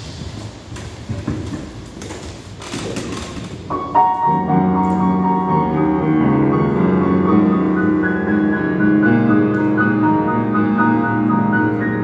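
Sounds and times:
grand piano notes: 3.2s - 12.0s.

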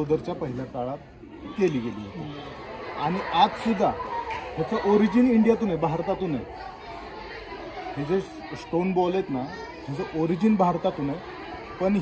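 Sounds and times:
men talking: 0.0s - 6.8s, 7.8s - 12.0s.

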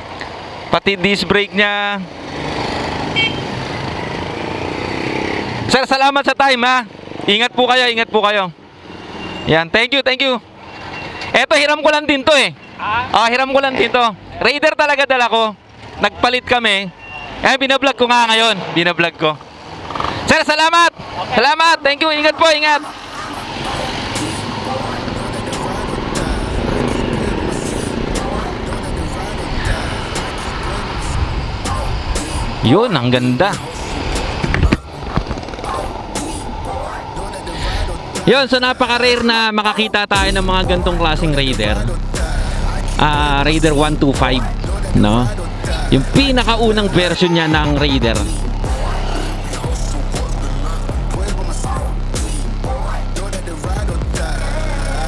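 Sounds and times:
wind on microphone: 33.7s - 38.2s
motorcycle engine running: 40.2s - 55.0s.

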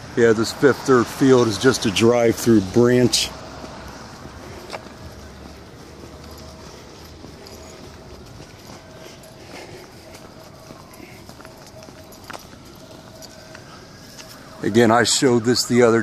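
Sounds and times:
footsteps on slushy pavement: 0.0s - 16.0s.

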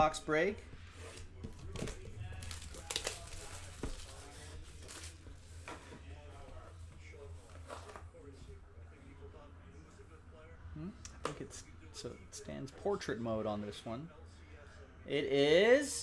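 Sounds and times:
plastic wrap crinkling and tearing: 1.1s - 5.3s.

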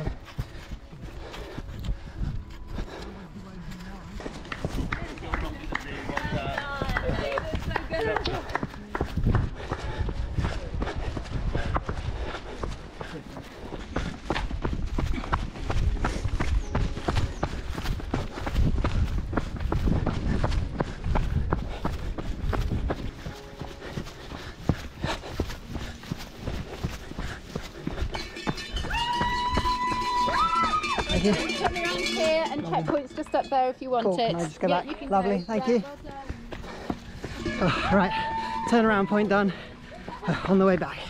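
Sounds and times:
running footsteps on dirt trail: 0.0s - 41.0s
held high tone: 37.3s - 38.7s.

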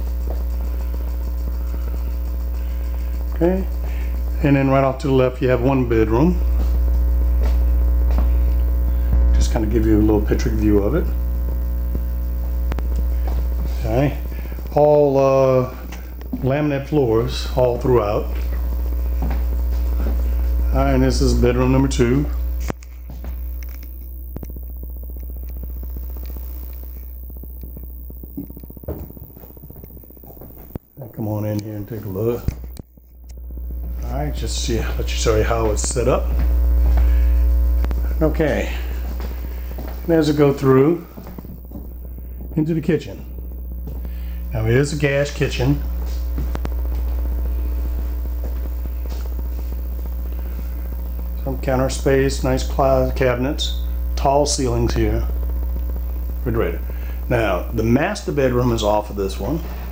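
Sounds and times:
low electrical hum: 0.0s - 59.9s
fine crackle of clicks: 11.3s - 13.4s, 22.6s - 33.9s, 37.8s - 38.1s, 46.0s - 51.5s.

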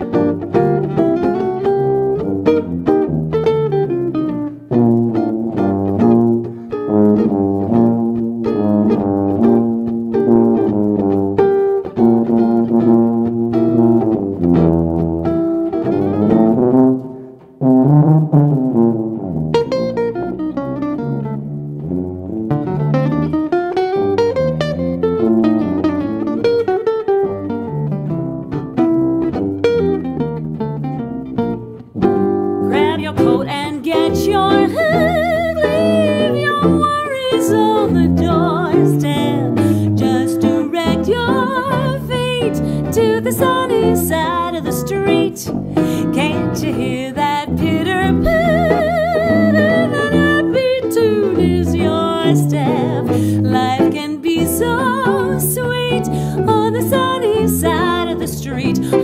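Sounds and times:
guitar picking chords and melody: 0.0s - 59.0s
sousaphone bass line: 32.1s - 44.4s, 46.2s - 53.7s.

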